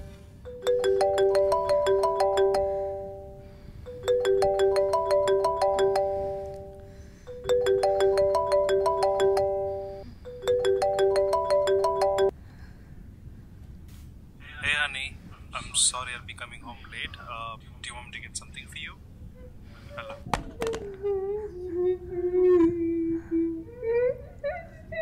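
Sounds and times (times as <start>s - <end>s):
marimba ringtone melody: 0.0s - 12.3s.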